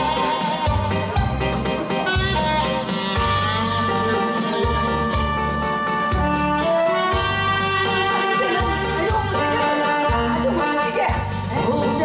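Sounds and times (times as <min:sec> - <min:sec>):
saxophone melody: 0:00.0 - 0:11.5
bass and drum beat: 0:00.0 - 0:12.0
keyboard backing: 0:00.0 - 0:12.0.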